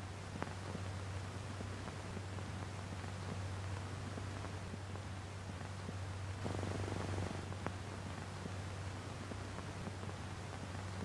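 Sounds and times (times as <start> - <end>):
light hiss: 0.0 - 11.0
low electrical hum: 0.0 - 11.0.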